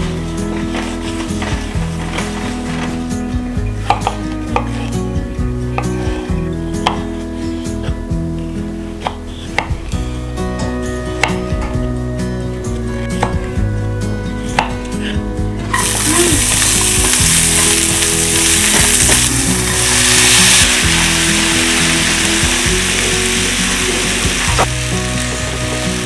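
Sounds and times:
soft background music: 0.0 - 26.0.

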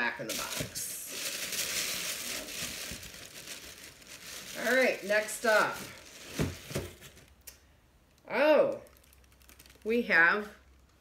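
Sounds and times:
tissue paper crinkling: 0.3 - 7.3, 8.8 - 10.0.

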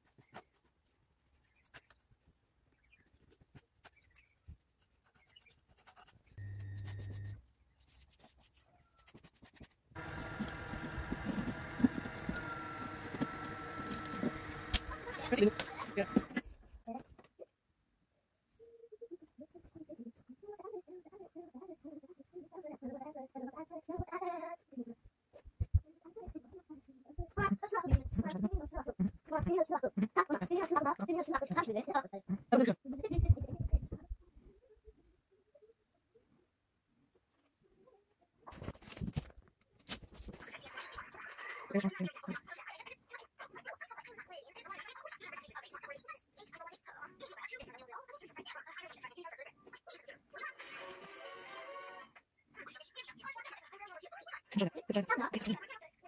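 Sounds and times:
paintbrush strokes on plastic: 0.0 - 14.7
soft low thumps: 27.2 - 30.1.

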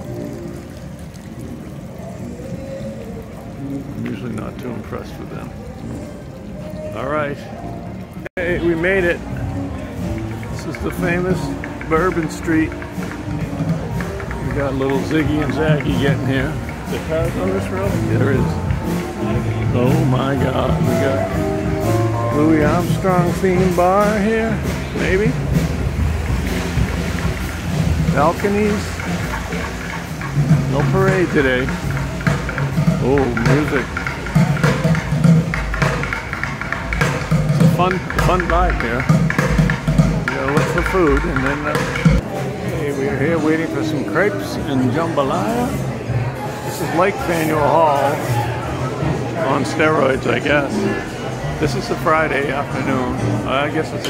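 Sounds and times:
street music with long held notes: 0.0 - 54.0.

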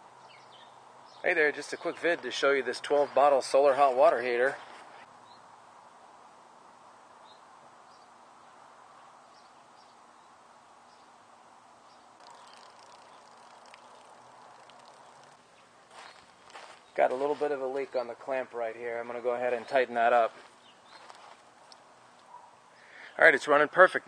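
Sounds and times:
faint steady hiss: 0.0 - 24.0
faint high chirps: 12.2 - 16.2.

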